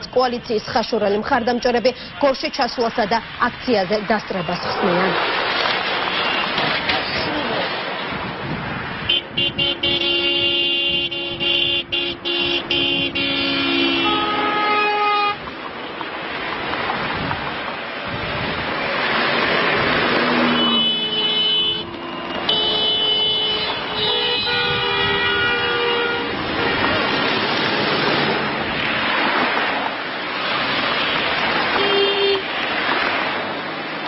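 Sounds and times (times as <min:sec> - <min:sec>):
vehicle horns honking: 0:06.0 - 0:06.6, 0:09.0 - 0:15.4, 0:20.4 - 0:27.2, 0:31.7 - 0:32.5.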